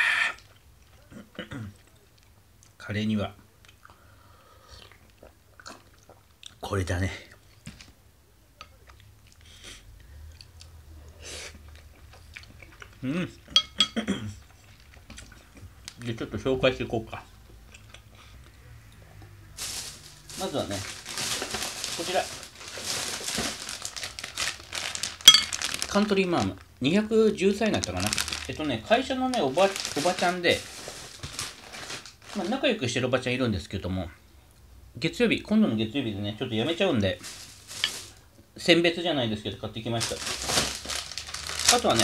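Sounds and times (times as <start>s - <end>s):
plastic packaging crinkling: 19.5s - 32.8s, 37.0s - 38.3s, 39.8s - 42.0s.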